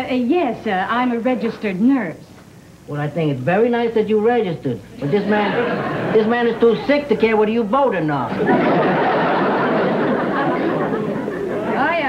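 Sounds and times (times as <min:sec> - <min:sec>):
dialogue: 0:00.0 - 0:12.0
studio audience laughter: 0:05.1 - 0:06.7, 0:08.3 - 0:12.0.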